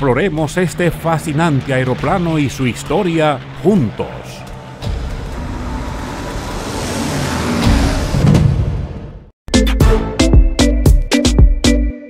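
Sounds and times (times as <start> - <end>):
propeller planes roaring past: 0.0 - 9.1.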